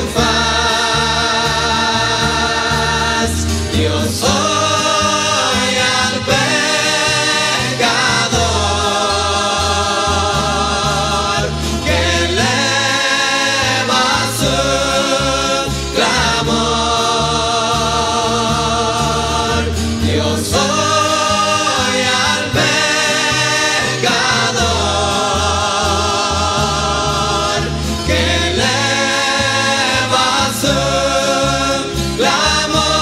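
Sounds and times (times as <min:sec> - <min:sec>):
bass line: 0:00.0 - 0:33.0
choir singing held notes: 0:00.0 - 0:33.0
guitar accompaniment: 0:00.0 - 0:33.0.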